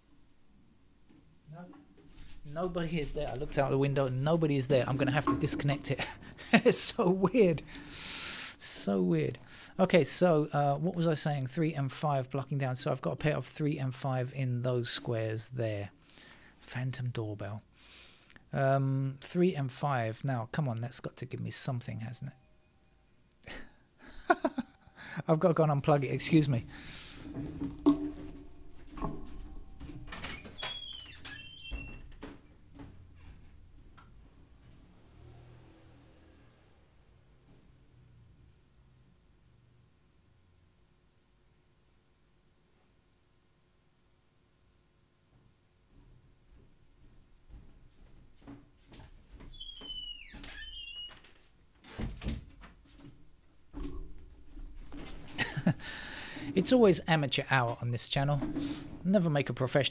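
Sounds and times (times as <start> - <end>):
door squeaking open: 4.8 - 6.0, 29.6 - 32.3, 49.5 - 52.4
knocking: 4.8 - 6.3, 27.2 - 30.0.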